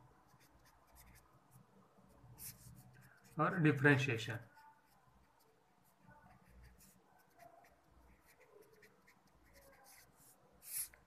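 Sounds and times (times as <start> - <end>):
pen scratching while handwriting: 0.3 - 1.2, 4.6 - 11.0.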